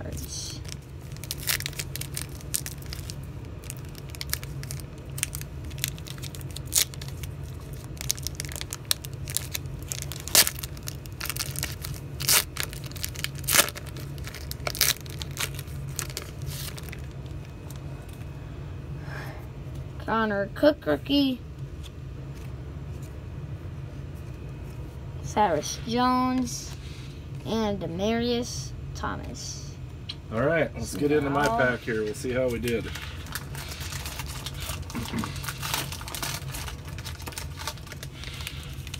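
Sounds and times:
low hum: 0.0 - 38.9
foil wrapper crackling: 0.4 - 18.2, 31.4 - 38.9.

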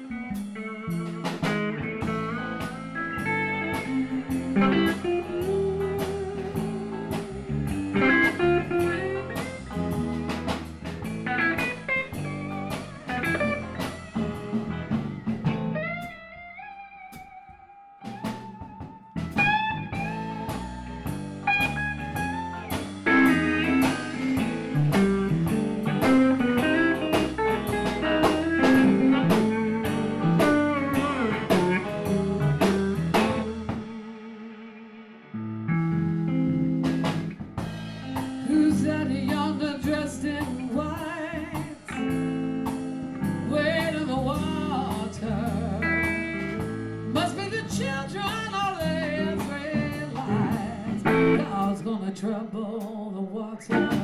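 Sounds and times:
electric guitar soloing: 0.0 - 38.8, 41.8 - 51.8, 53.7 - 54.0
drum kit beat: 0.0 - 51.8, 53.7 - 54.0.

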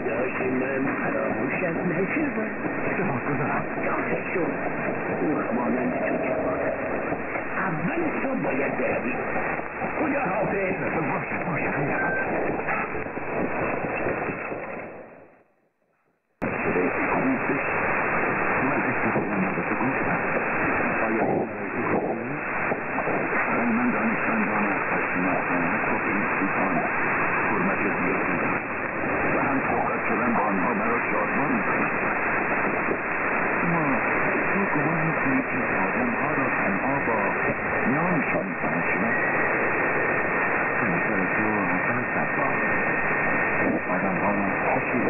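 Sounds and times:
faint radio voice: 0.0 - 14.9, 16.4 - 39.8, 40.7 - 45.0
radio noise and static: 0.0 - 15.6, 16.4 - 45.0.

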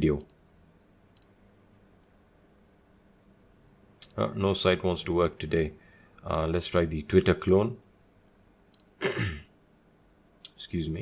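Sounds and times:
faint computer mouse clicks: 1.1 - 1.4, 8.7 - 8.9.

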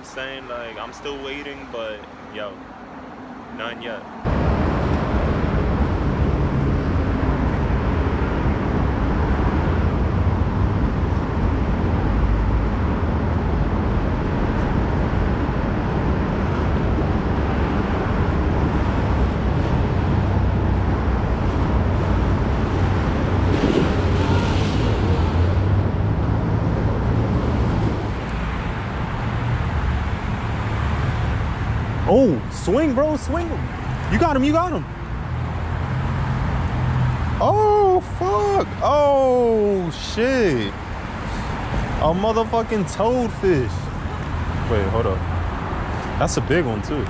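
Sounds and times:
road traffic rumble: 0.0 - 47.0.

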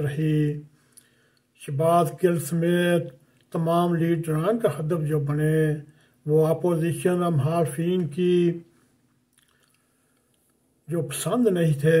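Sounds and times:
man speaking: 0.0 - 0.7, 1.6 - 8.7, 10.9 - 12.0
faint mouth clicks: 9.3 - 10.6.

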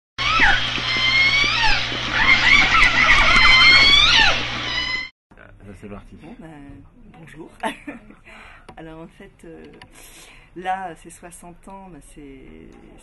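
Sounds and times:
gliding whistling calls: 0.2 - 5.1.

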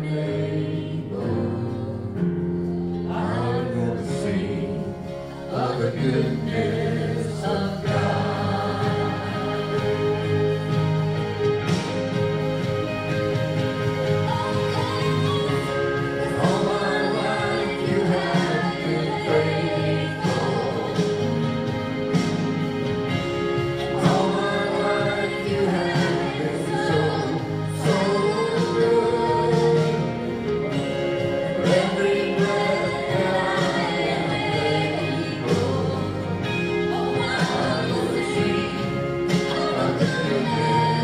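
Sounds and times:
man and woman singing duet: 0.0 - 13.3, 14.0 - 41.0
instrumental accompaniment: 0.0 - 41.0
musical backing: 0.0 - 41.0.

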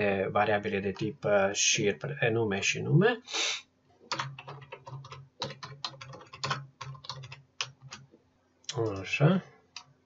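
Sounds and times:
typing on computer keyboard: 4.1 - 8.0.

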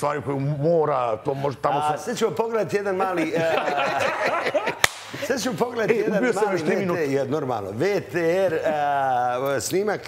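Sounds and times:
sharp crack: 4.8 - 5.2
people talking: 5.3 - 10.0.

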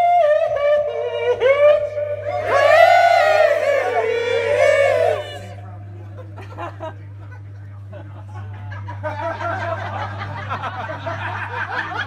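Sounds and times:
low amplifier hum: 0.0 - 10.2.

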